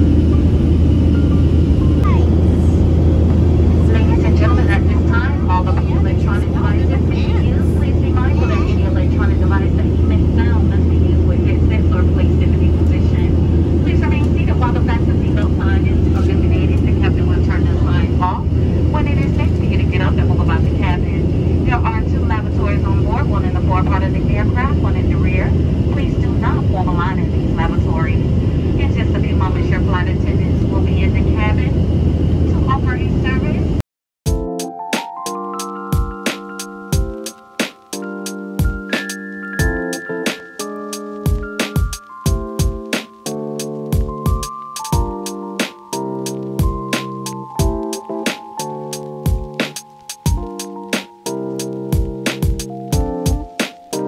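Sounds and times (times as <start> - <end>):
jet engine drone in cabin: 0.0 - 33.8
indistinct voices talking: 2.0 - 31.6.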